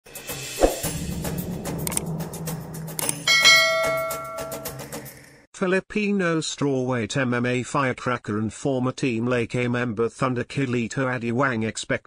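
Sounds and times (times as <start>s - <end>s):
low hum: 0.6s - 5.4s
bright bell-like chime: 3.1s - 4.9s.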